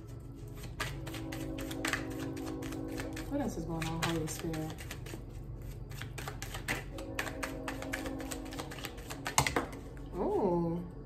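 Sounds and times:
cards being shuffled: 0.2 - 9.9.

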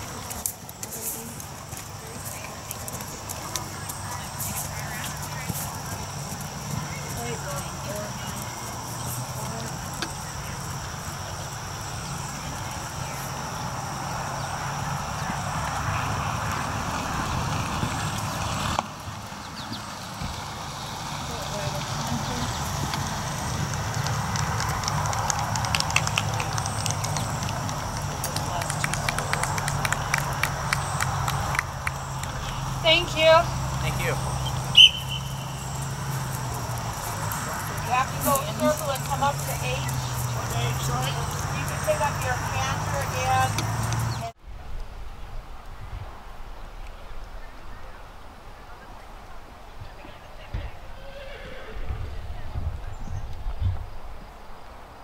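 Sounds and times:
distant voices: 0.0 - 55.0.

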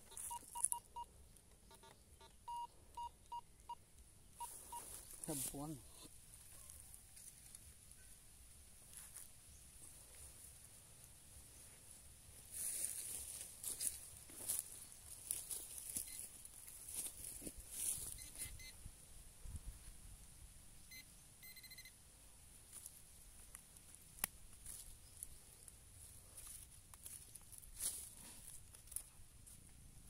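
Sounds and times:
rustling and scratching in dirt: 0.0 - 3.0, 3.9 - 18.8, 22.5 - 30.0
electronic detector beeps: 0.0 - 6.1, 16.0 - 16.3, 18.0 - 18.8, 20.8 - 22.0.

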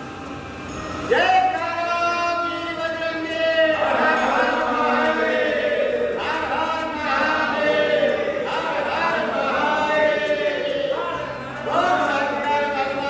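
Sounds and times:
men chanting in unison: 3.7 - 13.0.

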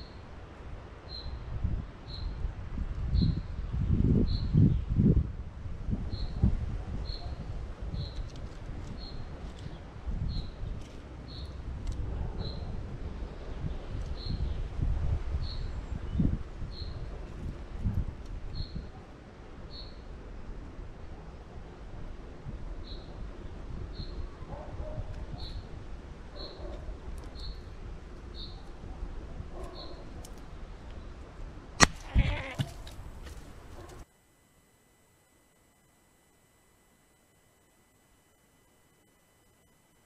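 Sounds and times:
bird calling: 31.8 - 32.9.

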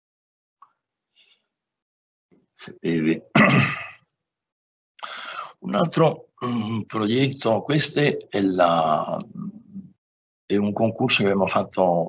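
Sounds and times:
man coughing: 3.3 - 4.0.

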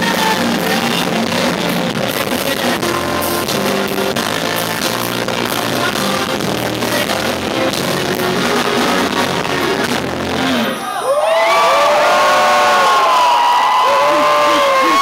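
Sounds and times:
live band music: 0.0 - 10.8
audience cheering and whooping: 10.7 - 15.0.

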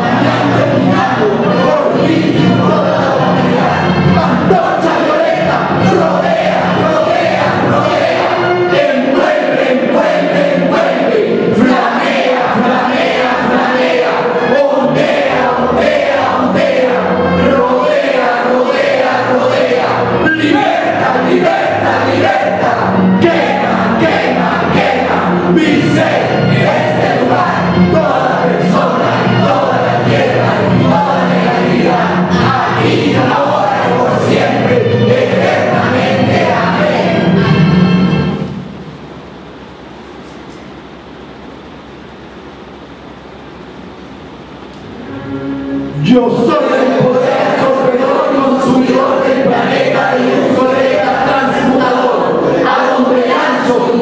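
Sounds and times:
group singing in unison: 0.0 - 38.5, 45.7 - 54.0
microphone hiss: 0.0 - 54.0.

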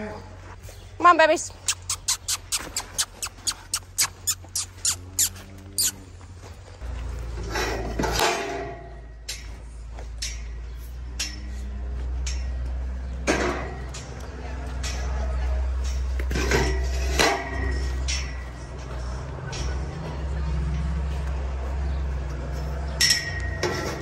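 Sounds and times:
quick sharp clicks: 1.6 - 5.0
cattle calling: 1.6 - 6.2.

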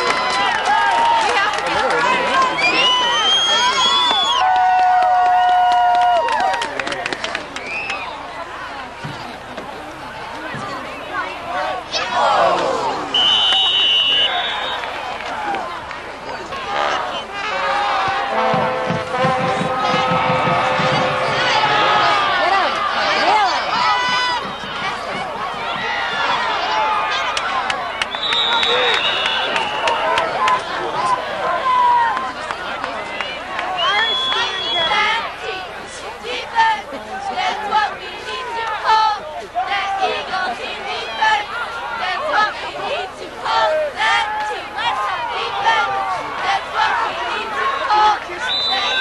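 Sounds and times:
football crowd shouting and cheering: 0.0 - 49.0
high whistle blasts: 2.6 - 4.5, 13.1 - 15.0, 28.1 - 30.1, 33.8 - 35.1, 48.4 - 49.0.

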